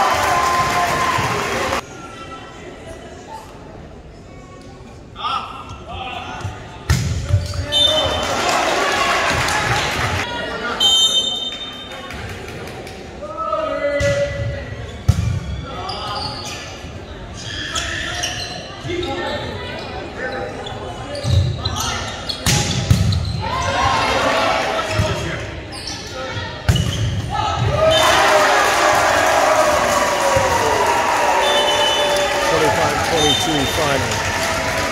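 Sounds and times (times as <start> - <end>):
crowd cheering and shouting: 0.0 - 1.8, 27.4 - 34.9
players shouting: 27.6 - 34.9.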